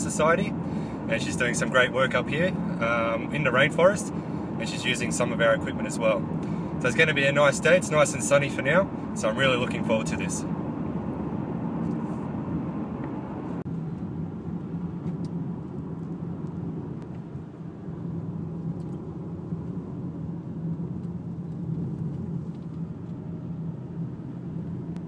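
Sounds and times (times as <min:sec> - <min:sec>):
car engine and tyre rumble: 0:00.0 - 0:25.0.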